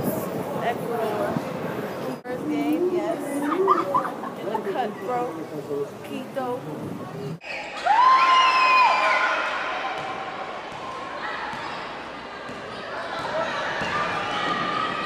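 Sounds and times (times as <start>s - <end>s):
voices and crowd noise: 0.0s - 15.0s.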